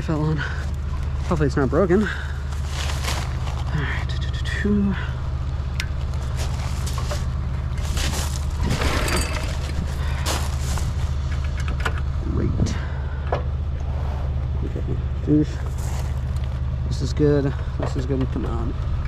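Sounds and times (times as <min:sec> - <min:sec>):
small engine running steadily: 0:00.0 - 0:19.0.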